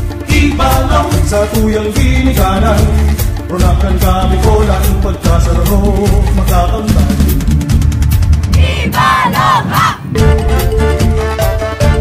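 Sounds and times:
steady drumming: 0.0 - 12.0
group of voices shouting: 8.6 - 10.1.

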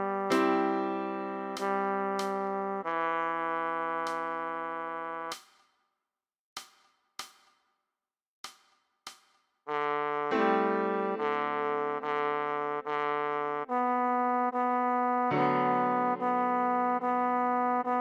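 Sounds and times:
trombone melody: 0.0 - 5.4, 9.7 - 18.0.

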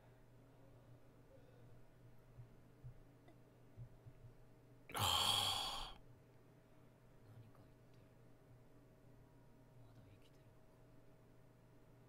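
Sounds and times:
man sighing: 4.9 - 6.0.

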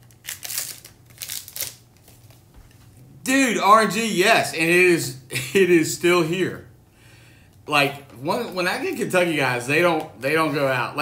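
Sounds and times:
foil wrapper crinkling: 0.0 - 2.8.

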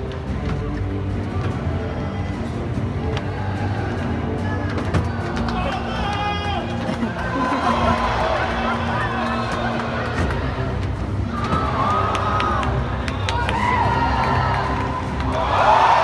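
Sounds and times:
audience voices: 0.0 - 16.0.

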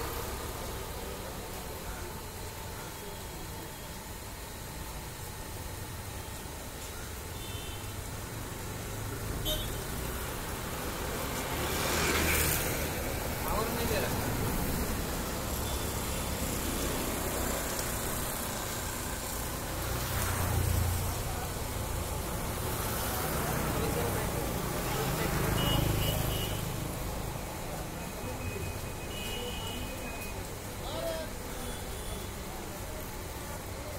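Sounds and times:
traffic: 0.0 - 33.9
voices: 0.0 - 33.9.

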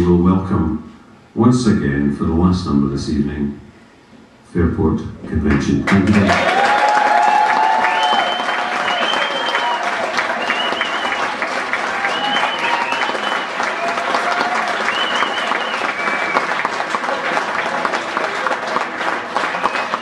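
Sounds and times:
audience applauding: 5.5 - 20.0
cheers: 6.0 - 20.0
whistles: 7.4 - 11.4, 12.0 - 16.7, 19.4 - 20.0.

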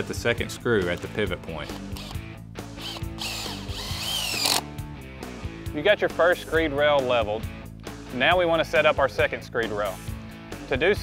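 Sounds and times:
cordless drill driving screw: 1.0 - 2.2, 2.8 - 4.7.

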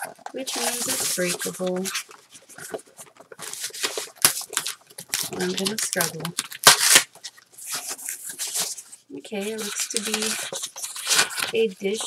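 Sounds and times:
cardboard package scraping and rustling: 0.3 - 12.0.

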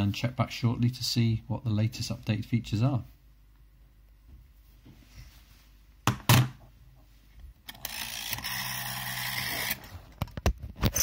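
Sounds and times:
device handling rubbing whirr: 7.6 - 10.2.

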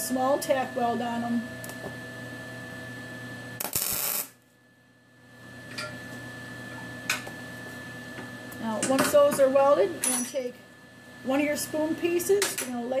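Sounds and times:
steady low hum: 0.0 - 13.0
welding arc burst: 3.6 - 4.4.

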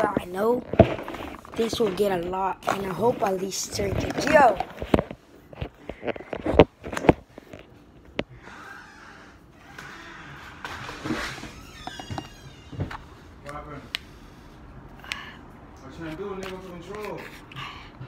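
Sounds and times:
plastic lid rustling and scraping: 0.0 - 7.7.

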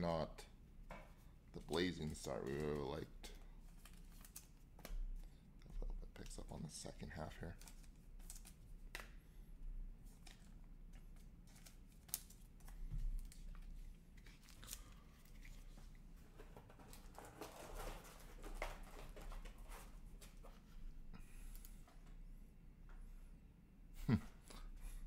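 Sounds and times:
plastic sleeves crinkling: 1.6 - 5.0, 6.1 - 9.0, 10.0 - 20.6.

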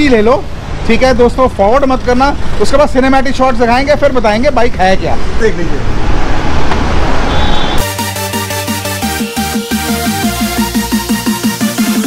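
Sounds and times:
road traffic noise: 0.0 - 12.0
vehicle horn toot: 7.3 - 7.9
electronic music: 7.8 - 12.0.

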